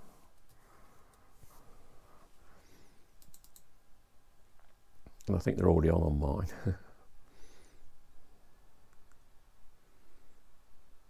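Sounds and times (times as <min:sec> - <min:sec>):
faint short clicks: 0:03.2 - 0:03.7.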